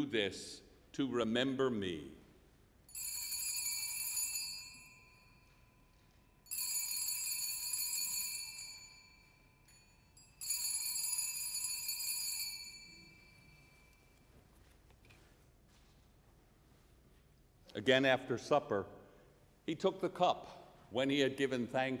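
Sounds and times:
altar bell ringing: 2.9s - 14.2s.

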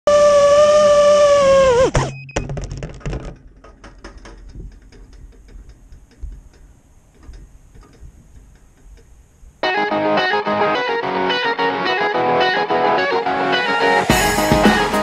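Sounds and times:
drone motors whining: 0.1s - 2.3s
clicks and knocks: 2.3s - 9.2s.

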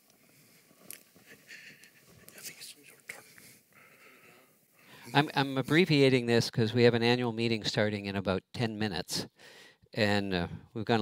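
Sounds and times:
person whispering: 2.2s - 3.6s.

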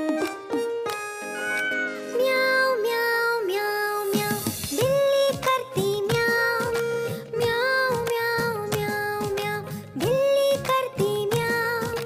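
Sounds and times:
children's song instrumental music: 0.0s - 12.0s.

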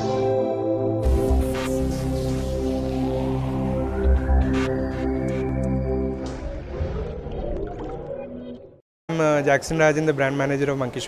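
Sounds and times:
electronic intro music: 0.0s - 8.8s.

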